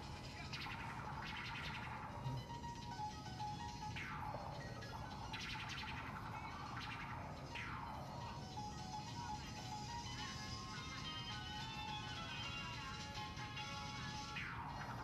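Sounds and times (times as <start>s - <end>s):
faint music over speakers: 0.0s - 15.0s.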